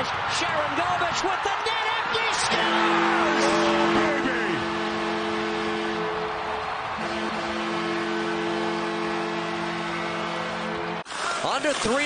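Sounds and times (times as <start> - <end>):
crowd cheering: 0.0 - 12.0
arena goal horn: 2.5 - 11.0.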